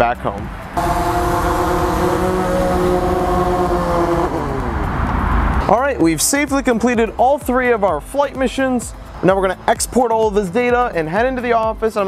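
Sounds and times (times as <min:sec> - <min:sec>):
drone propellers whining: 0:00.7 - 0:05.8.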